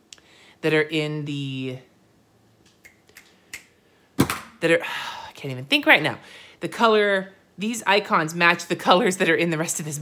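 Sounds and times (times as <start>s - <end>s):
finger snaps: 2.7s - 3.7s.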